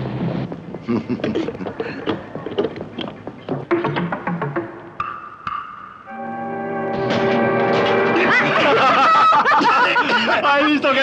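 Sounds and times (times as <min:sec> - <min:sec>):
sustained orchestral chord: 0:06.1 - 0:08.7.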